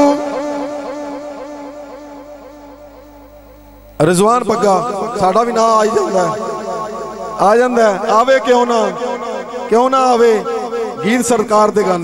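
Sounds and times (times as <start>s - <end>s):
man chanting through pa: 3.9s - 12.0s.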